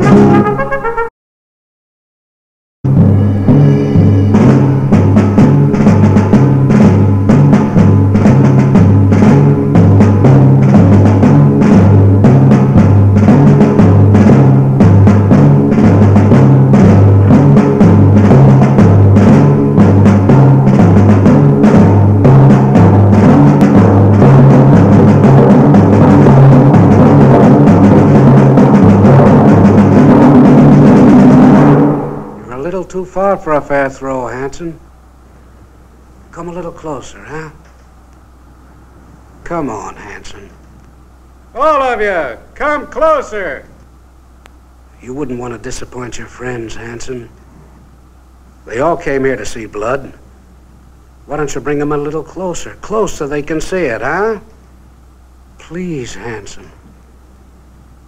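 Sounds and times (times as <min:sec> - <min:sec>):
dramatic orchestral music: 0:00.0 - 0:01.1, 0:02.9 - 0:06.8
low drums beating: 0:02.8 - 0:33.2.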